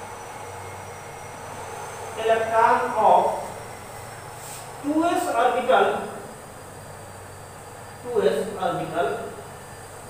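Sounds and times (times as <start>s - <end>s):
faint high whine: 0.0s - 10.0s
low hum: 0.0s - 10.0s.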